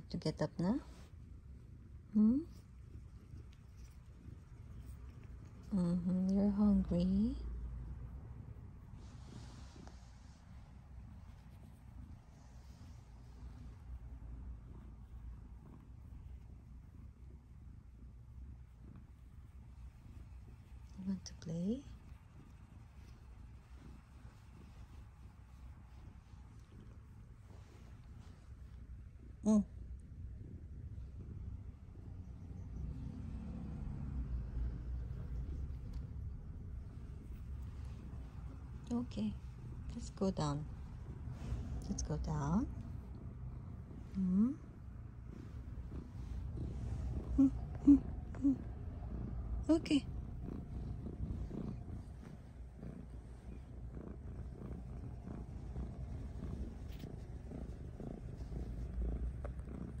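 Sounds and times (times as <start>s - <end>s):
cat purring: 0.0s - 60.0s.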